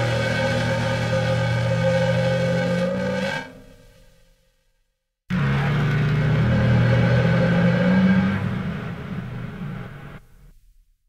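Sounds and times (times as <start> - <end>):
processed cymbal drone: 0.0 - 4.3.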